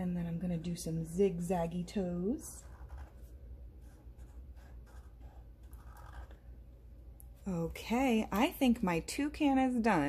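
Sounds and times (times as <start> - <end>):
marker scratching on paper: 2.5 - 6.5.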